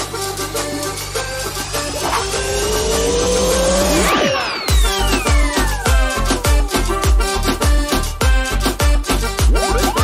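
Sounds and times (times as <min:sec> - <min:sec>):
synthesized rising sweep: 0:00.0 - 0:07.1, 0:09.4 - 0:10.0
jingle music with low beat: 0:00.0 - 0:10.0.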